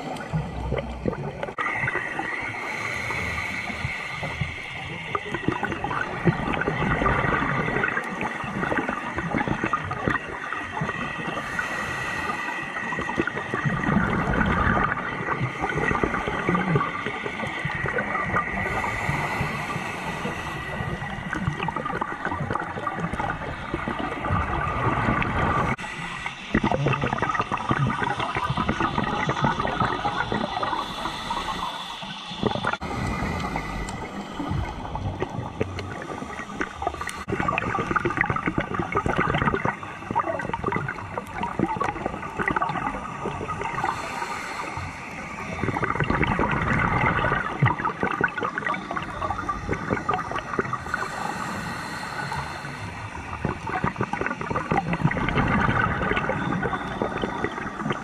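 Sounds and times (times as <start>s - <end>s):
bubbles gurgling underwater: 0.0s - 58.0s
scuba regulator breathing: 2.1s - 8.4s, 11.0s - 14.6s, 15.3s - 38.3s, 39.5s - 58.0s.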